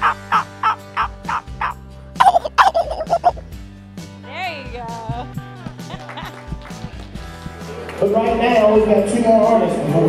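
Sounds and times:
man imitating turkey calls: 0.0s - 3.5s.

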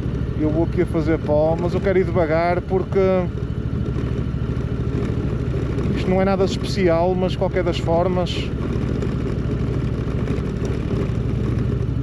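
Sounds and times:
motorcycle engine running at low speed: 0.0s - 12.0s.

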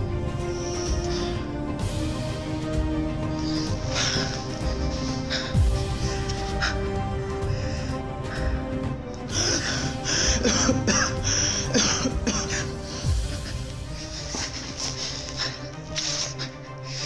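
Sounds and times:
music with held drone: 0.0s - 17.0s
man gasping breaths: 0.3s - 17.0s.

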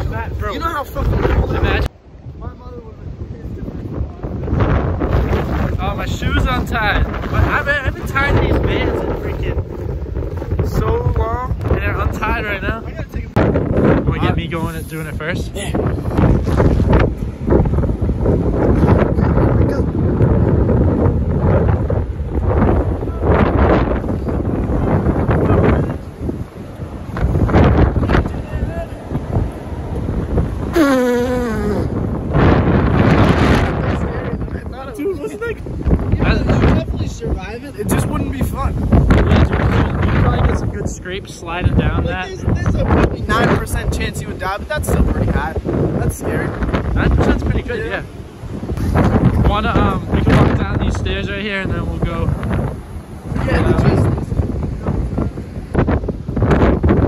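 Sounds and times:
wind buffeting microphone: 0.0s - 57.0s
person calling out: 30.7s - 32.0s
person holding a falling note: 30.8s - 31.9s.

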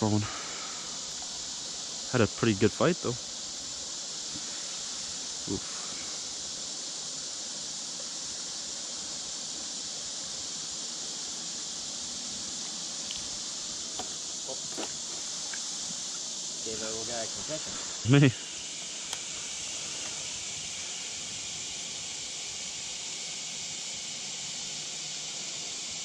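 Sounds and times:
insect chorus drone: 0.0s - 26.0s
faint clicks: 19.1s - 19.3s.

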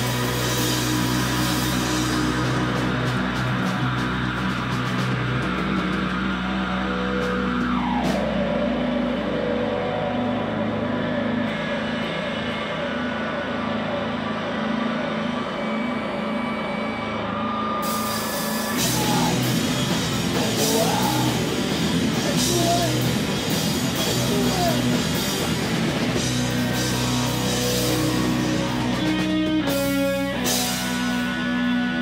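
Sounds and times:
drum kit: 0.0s - 15.9s, 17.8s - 32.0s
electric bass: 0.0s - 32.0s
electric guitar: 0.0s - 32.0s.

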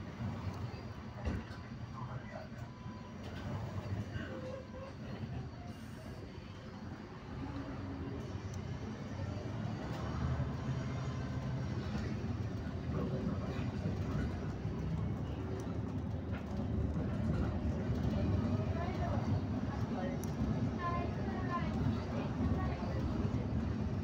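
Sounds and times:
tyres on road: 5.2s - 24.0s
faint voices: 11.8s - 24.0s.

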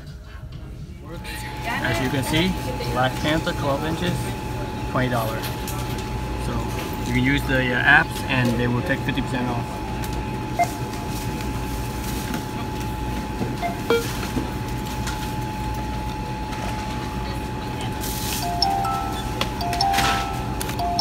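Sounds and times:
constant high tone: 13.6s - 14.1s, 18.4s - 21.0s
electronic beeps: 13.6s - 14.1s, 18.4s - 21.0s
faint music: 17.9s - 21.0s
low steady hum: 18.2s - 21.0s.

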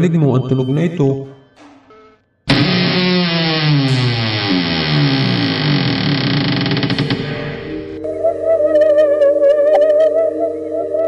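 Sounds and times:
steady held tones: 1.5s - 11.0s
tones sliding downward: 1.9s - 11.0s.

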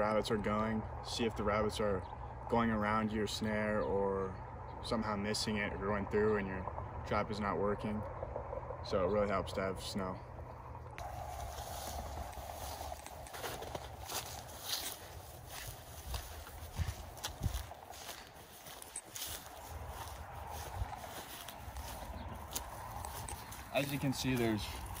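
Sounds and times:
steady low rumble: 0.0s - 25.0s
footsteps through dry grass: 11.0s - 25.0s.

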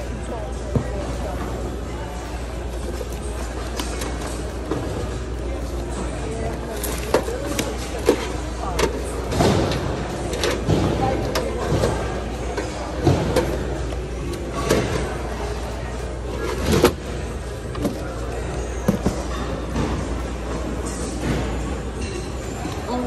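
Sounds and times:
people talking: 0.0s - 23.0s.

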